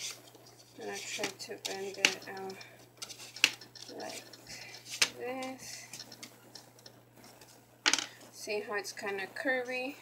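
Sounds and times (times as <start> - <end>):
paper rustling: 0.0 - 6.2.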